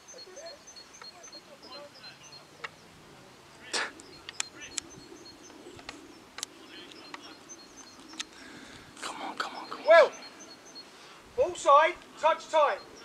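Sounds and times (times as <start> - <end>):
faint distant voices: 0.0 - 13.0.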